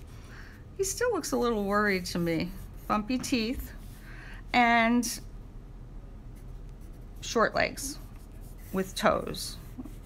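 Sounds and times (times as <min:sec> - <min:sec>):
pencil scratching on paper: 0:01.9 - 0:04.0, 0:06.4 - 0:10.0.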